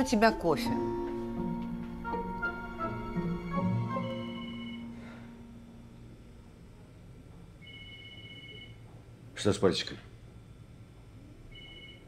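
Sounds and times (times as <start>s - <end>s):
low room hum: 0.0s - 12.0s
telephone ringing: 4.0s - 5.1s, 7.6s - 8.8s, 11.5s - 12.0s.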